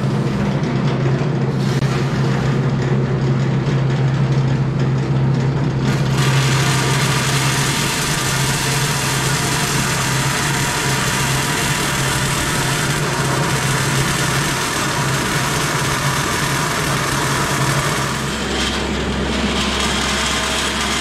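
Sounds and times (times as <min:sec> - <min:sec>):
bandsaw motor hum: 0:00.0 - 0:21.0
blade hissing through sheet metal: 0:05.9 - 0:21.0.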